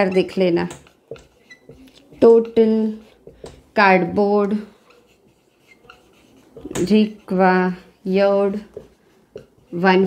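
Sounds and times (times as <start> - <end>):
woman speaking: 0.0 - 0.8, 1.8 - 3.1, 3.8 - 4.8, 6.6 - 8.8, 9.7 - 10.0
marker pen writing on whiteboard: 0.0 - 10.0.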